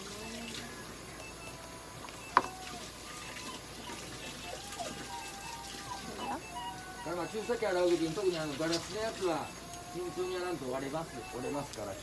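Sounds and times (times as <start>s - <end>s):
water running from a tap: 7.1s - 9.5s.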